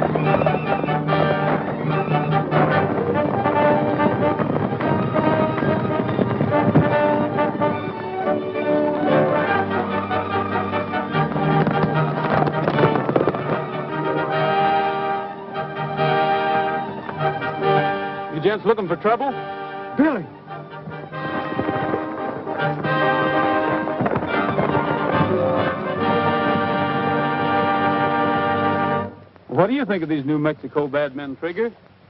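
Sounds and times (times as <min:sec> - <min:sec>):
orchestral chase music with brass: 0:00.0 - 0:29.2
galloping horses' hooves: 0:00.0 - 0:32.0.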